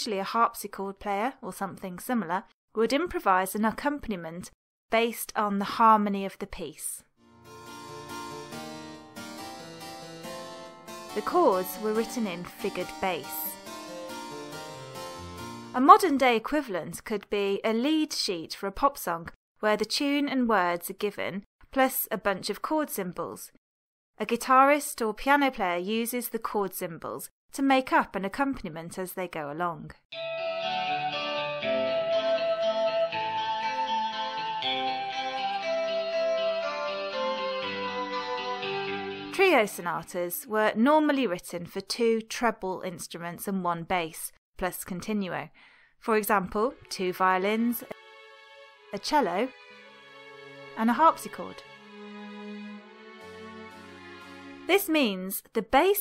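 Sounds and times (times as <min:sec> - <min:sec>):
harpsichord playing chords: 0:07.3 - 0:15.8, 0:30.2 - 0:39.2, 0:48.0 - 0:54.7
held melody notes: 0:07.4 - 0:15.8, 0:30.2 - 0:39.4.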